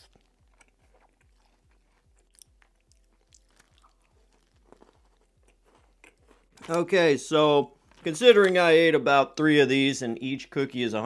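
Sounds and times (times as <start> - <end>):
faint chewing of cookie: 0.0 - 6.8
small crunches: 0.0 - 7.1.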